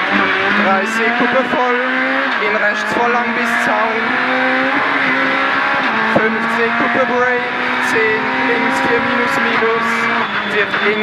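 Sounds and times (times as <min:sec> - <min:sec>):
rally car engine at full throttle: 0:00.0 - 0:11.0.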